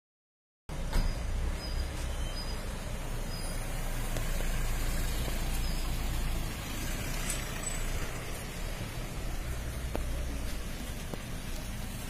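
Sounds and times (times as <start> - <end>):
vehicle driving slowly past: 0.7 - 12.0.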